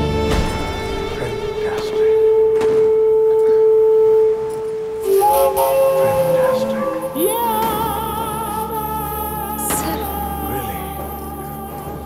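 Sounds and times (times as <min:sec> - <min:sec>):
held music note: 0:01.2 - 0:11.8.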